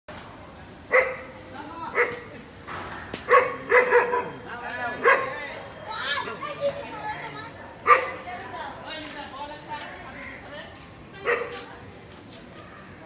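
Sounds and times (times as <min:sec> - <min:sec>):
dog barking: 0:00.9 - 0:02.3, 0:03.3 - 0:04.4, 0:05.0 - 0:05.4, 0:07.8 - 0:08.3, 0:11.2 - 0:11.7.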